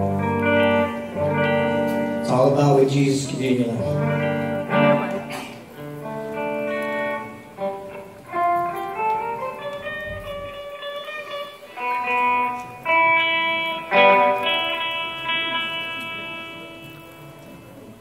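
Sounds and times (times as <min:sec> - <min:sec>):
electric guitar melody: 0:00.0 - 0:18.0.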